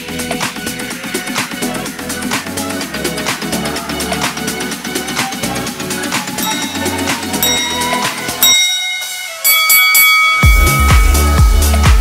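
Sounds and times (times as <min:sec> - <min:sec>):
electronic dance music: 0:00.0 - 0:12.0
bell chime: 0:06.4 - 0:12.0.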